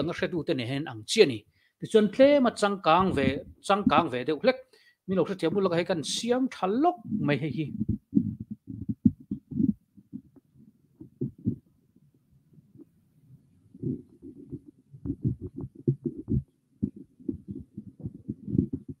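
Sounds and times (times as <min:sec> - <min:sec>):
microphone handling thumps: 0:02.9 - 0:04.2, 0:05.3 - 0:06.2, 0:07.0 - 0:11.7, 0:13.8 - 0:19.0.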